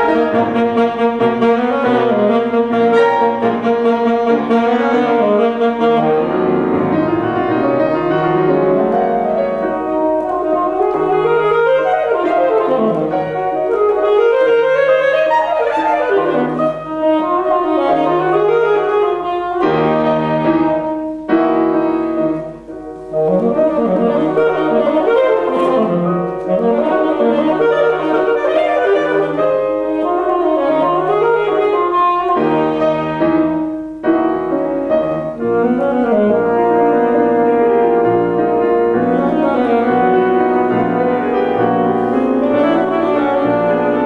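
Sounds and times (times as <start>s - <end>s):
piano accompaniment: 0.0s - 44.0s
saxophone melody: 0.0s - 44.0s.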